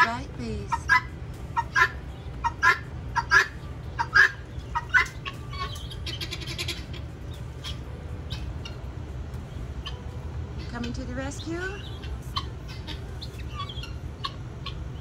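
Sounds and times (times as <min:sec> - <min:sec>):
high chirps: 0:00.7 - 0:15.0
guineafowl two-note calls: 0:00.8 - 0:07.0.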